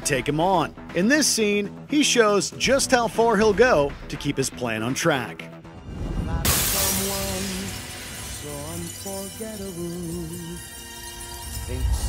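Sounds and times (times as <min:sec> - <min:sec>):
slow song playing: 0:05.4 - 0:12.0
glass window shattering: 0:06.5 - 0:12.0.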